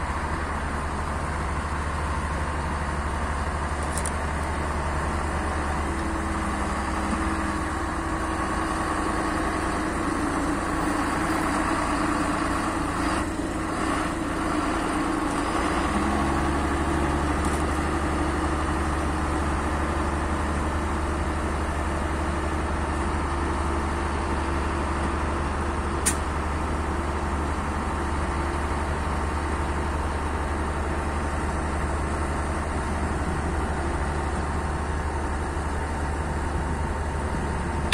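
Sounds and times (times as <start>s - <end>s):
tractor diesel engines running: 0.0s - 37.9s
sharp click: 26.0s - 26.3s.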